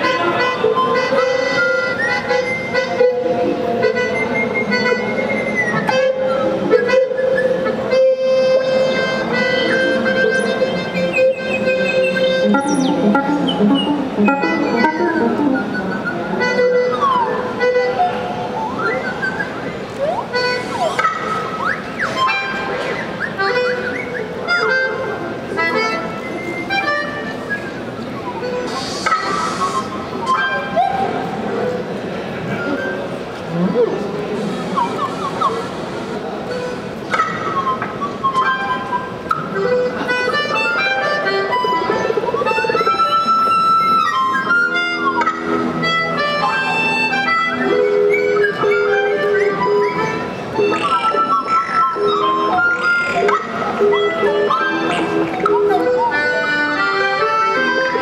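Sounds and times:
quick short repeated notes: 0:03.9 - 0:26.6
theremin gliding pitches: 0:11.1 - 0:16.3
steady held electronic tone: 0:11.2 - 0:16.0
electronic hiss burst: 0:28.7 - 0:29.9.

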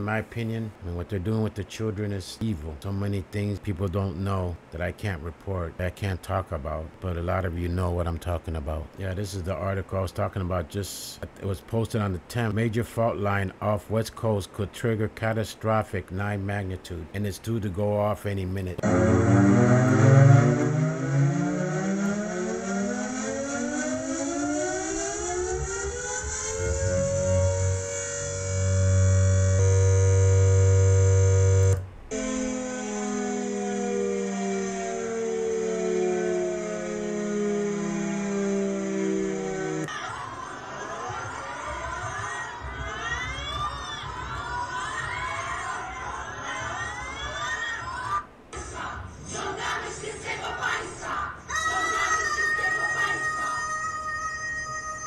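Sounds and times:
air-raid siren howling: 0:18.8 - 0:39.9
wavering rising and falling sounds: 0:18.8 - 0:39.9.

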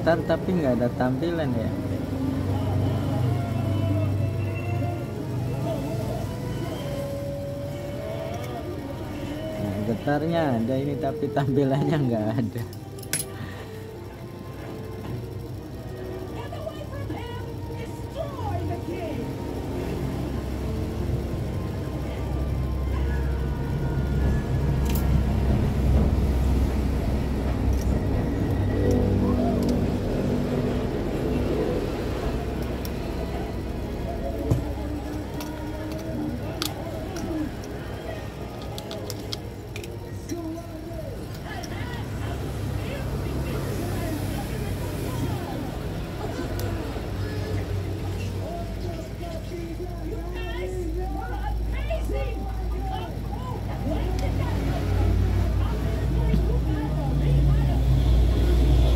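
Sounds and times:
background music: 0:00.0 - 0:44.3
low rumble of road traffic: 0:00.0 - 0:58.9.

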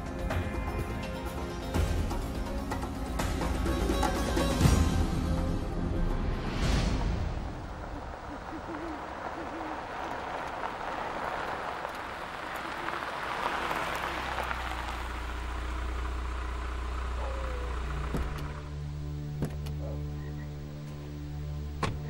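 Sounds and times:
car rolling over gravel: 0:06.9 - 0:19.6
car engine idling: 0:07.5 - 0:22.0
owl hooting: 0:07.7 - 0:10.0, 0:17.1 - 0:18.6, 0:19.7 - 0:20.8.

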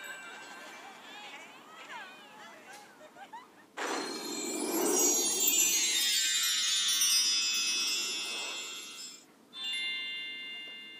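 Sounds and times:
shimmering bell-like chime music: 0:03.8 - 0:10.9.

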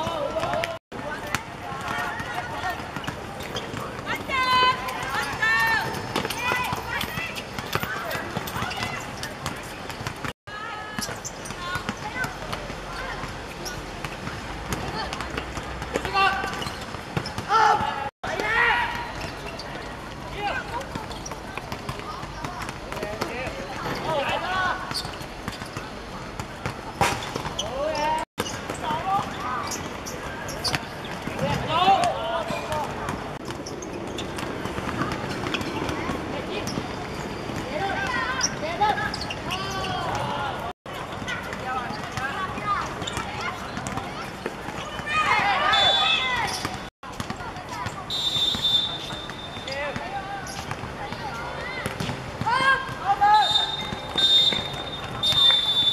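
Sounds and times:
players shouting: 0:17.4 - 0:20.9, 0:34.9 - 0:46.9, 0:48.1 - 0:55.9
footballers shouting: 0:44.8 - 0:46.9.

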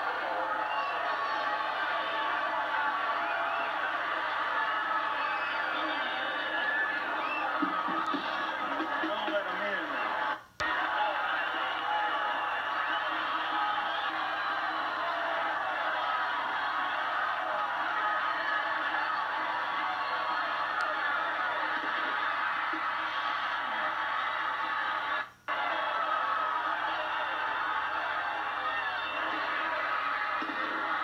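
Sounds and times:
stadium crowd noise on tv: 0:00.0 - 0:31.0.

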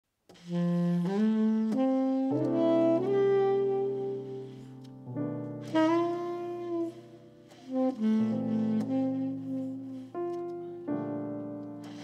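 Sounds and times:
saxophone jazz ballad: 0:00.3 - 0:12.0
piano chords: 0:01.2 - 0:12.0.

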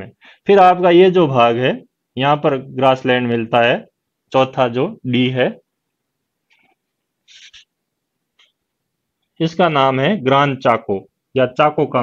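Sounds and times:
marker squeaking on whiteboard: 0:06.5 - 0:07.8.

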